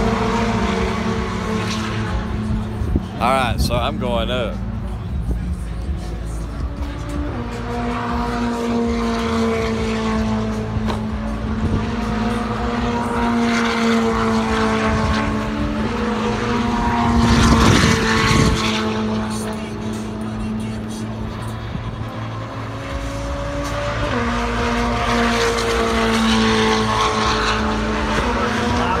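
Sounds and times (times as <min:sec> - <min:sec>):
engine drone with pitched hum: 0:00.0 - 0:29.0.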